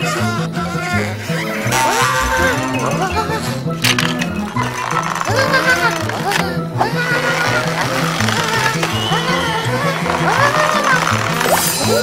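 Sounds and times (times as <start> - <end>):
cartoon music with pulsing bass: 1.6 - 8.6.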